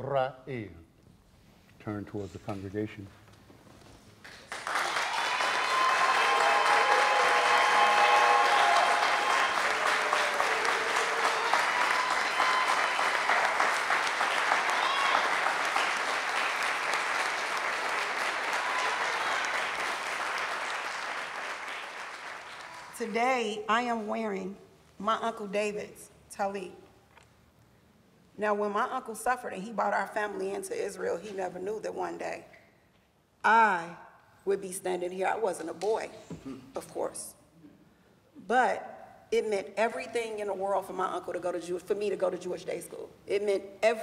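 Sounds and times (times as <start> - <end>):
congregation applauding: 4.2 - 23.0.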